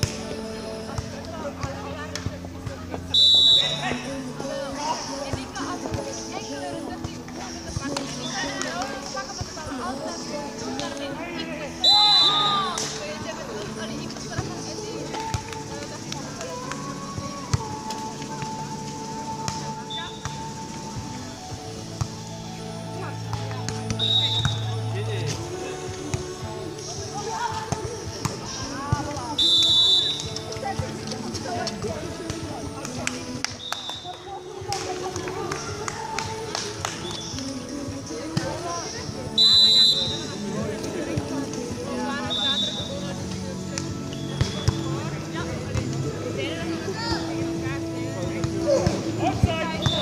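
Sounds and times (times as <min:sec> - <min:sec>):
background music: 0:00.0 - 0:50.0
voices: 0:00.0 - 0:50.0
volleyball slaps: 0:11.9 - 0:13.1, 0:32.7 - 0:37.5.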